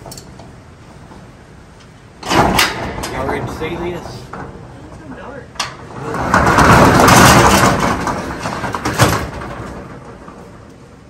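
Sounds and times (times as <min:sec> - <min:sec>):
metal roll-up door rattling: 0:02.2 - 0:11.0
roll-up door banging: 0:02.2 - 0:11.0.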